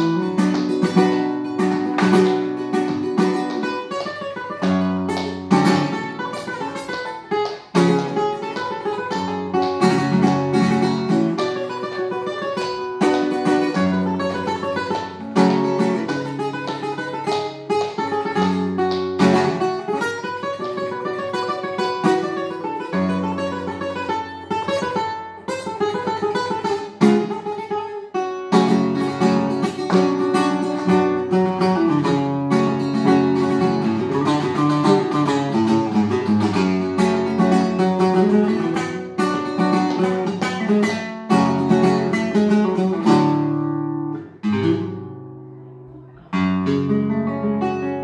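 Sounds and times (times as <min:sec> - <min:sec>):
fingerpicked classical guitar: 0:00.0 - 0:48.0.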